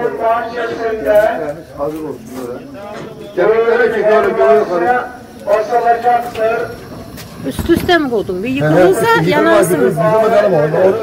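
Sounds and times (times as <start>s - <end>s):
man talking: 8.5s - 10.8s.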